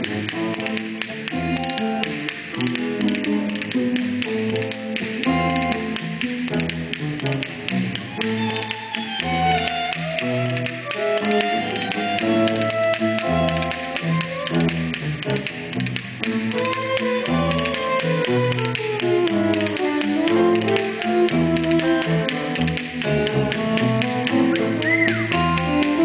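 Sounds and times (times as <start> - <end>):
rapid tapping percussion: 0.0 - 26.0.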